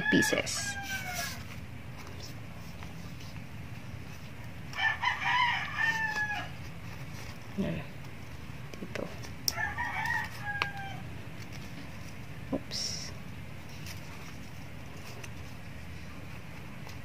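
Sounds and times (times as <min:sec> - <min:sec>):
rooster crowing: 0:00.0 - 0:01.4, 0:04.7 - 0:06.6, 0:09.5 - 0:11.1.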